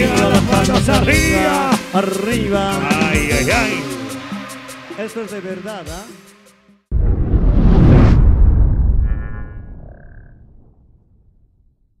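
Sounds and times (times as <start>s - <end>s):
low rumble: 6.9s - 12.0s.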